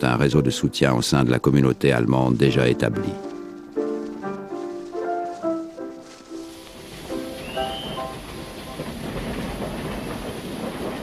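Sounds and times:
steam train rail noise: 0:02.6 - 0:11.0.

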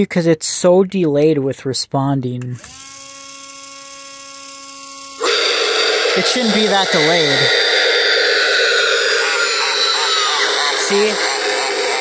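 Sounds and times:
gear motor whine: 0:04.9 - 0:12.0
recorded voice through speaker: 0:06.1 - 0:07.6, 0:08.8 - 0:12.0.

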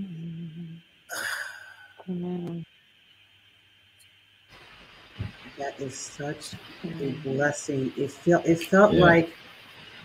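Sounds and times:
low hummed note: 0:00.0 - 0:00.8, 0:02.0 - 0:02.6
breathy sigh: 0:00.0 - 0:02.1.

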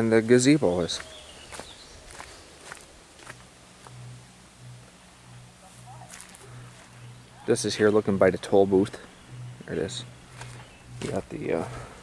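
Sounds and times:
footsteps on forest trail: 0:00.0 - 0:12.0
pulsing low hum: 0:01.1 - 0:12.0.

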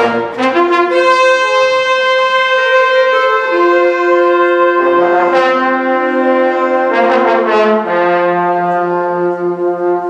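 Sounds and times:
horn section holding long note: 0:00.0 - 0:10.0.

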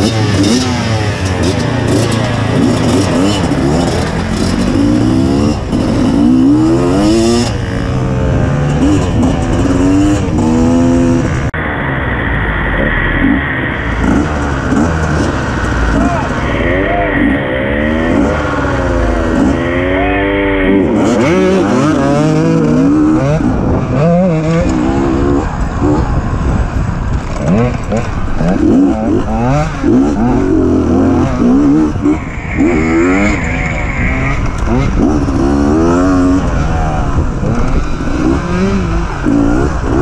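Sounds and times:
dirt bike engine revving: 0:00.0 - 0:11.6, 0:12.2 - 0:40.0.

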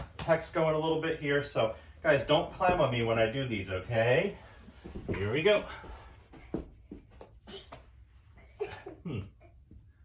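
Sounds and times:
shuffling and faint knocks: 0:02.1 - 0:08.2.

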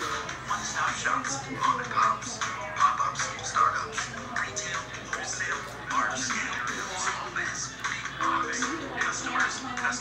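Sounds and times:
television commercial music: 0:00.0 - 0:10.0
voice over television: 0:00.0 - 0:10.0.

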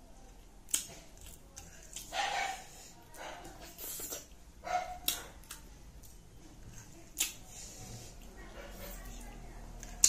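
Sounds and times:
person chewing: 0:00.4 - 0:02.8, 0:03.6 - 0:08.2.

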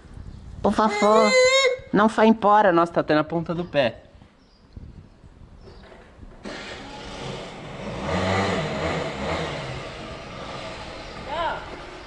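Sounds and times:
scooter engine revving: 0:06.4 - 0:12.0.

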